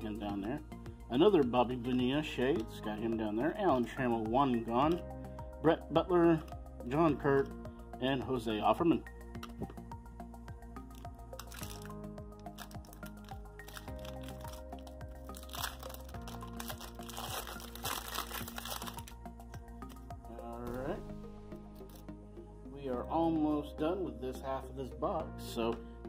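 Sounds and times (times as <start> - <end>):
background music: 0.0 - 26.0
wrapper crinkling and tearing: 11.4 - 19.2.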